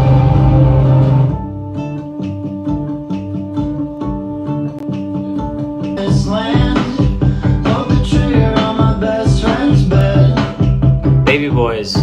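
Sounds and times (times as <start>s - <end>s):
plucked guitar music: 0.0s - 7.8s.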